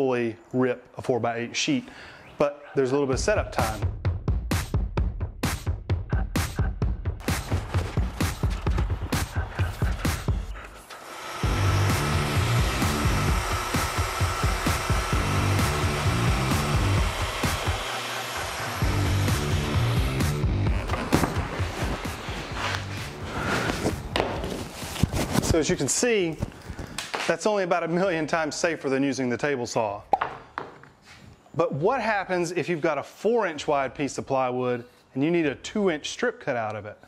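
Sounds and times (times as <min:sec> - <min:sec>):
background music with steady beat: 0:03.2 - 0:10.8, 0:11.4 - 0:24.6
track saw whining: 0:09.0 - 0:21.4.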